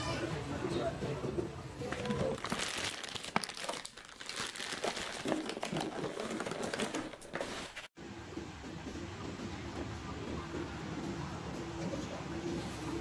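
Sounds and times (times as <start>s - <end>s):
plastic bag crinkling: 1.9s - 7.9s.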